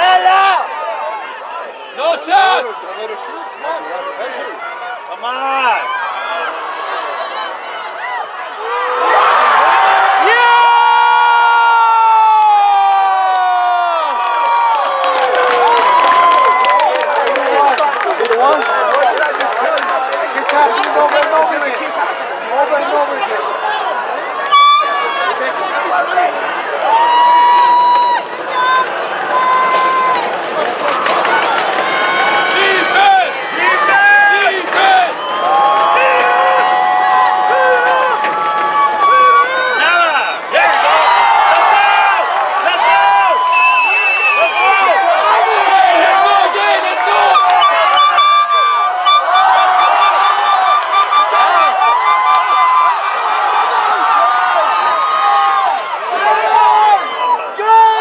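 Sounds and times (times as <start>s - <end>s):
spectators shouting and cheering: 0.0s - 58.0s
fast repeating buzz: 47.4s - 53.7s.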